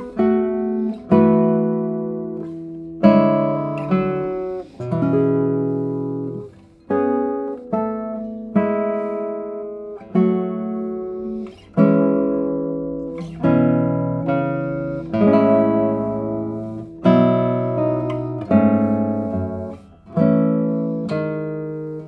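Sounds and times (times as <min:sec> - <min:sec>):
classical guitar plucked chords: 0:00.0 - 0:22.0.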